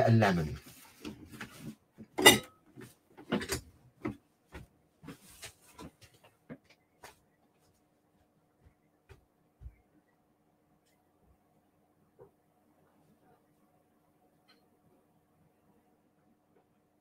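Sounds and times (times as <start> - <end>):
faint room hum: 0.0 - 17.0
footsteps walking away: 4.5 - 9.9.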